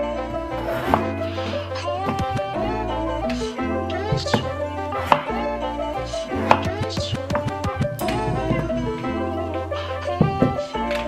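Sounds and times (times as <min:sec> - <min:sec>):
background music: 0:00.0 - 0:11.0
knife cutting potatoes on board: 0:06.5 - 0:08.2.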